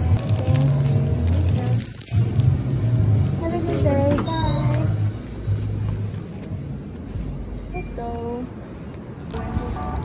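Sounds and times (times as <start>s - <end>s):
city street traffic rumble: 0.0s - 10.0s
shop door opening: 3.7s - 5.2s.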